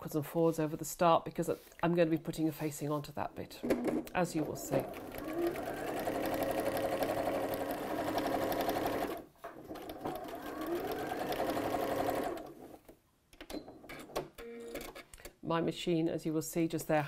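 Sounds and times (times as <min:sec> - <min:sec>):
sewing machine stitching: 0:04.4 - 0:12.8.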